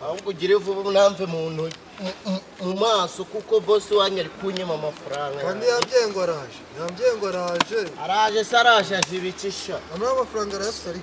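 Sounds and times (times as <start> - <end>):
person chanting syllables: 1.9 - 3.0.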